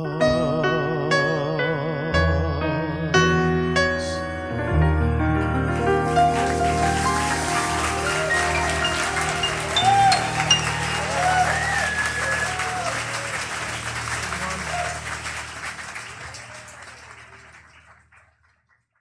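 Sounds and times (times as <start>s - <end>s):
audience applause and cheers: 5.6s - 18.8s.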